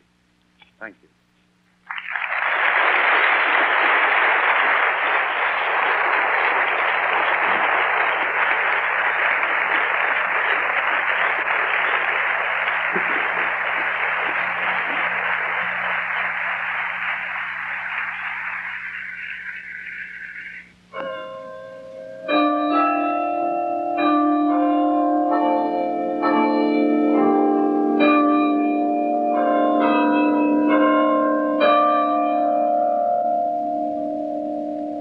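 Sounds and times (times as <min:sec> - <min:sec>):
audience applauding: 0:01.8 - 0:20.7.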